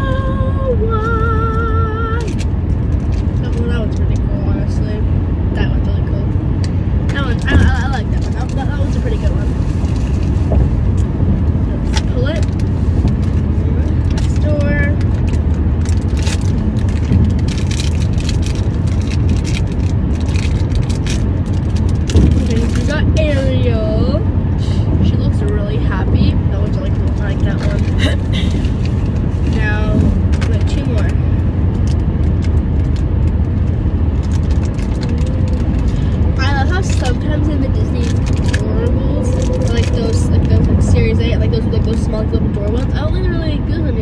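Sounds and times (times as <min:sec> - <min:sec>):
car road and engine rumble: 0:00.0 - 0:44.0
plastic packaging crackling: 0:11.8 - 0:23.1, 0:26.8 - 0:41.0.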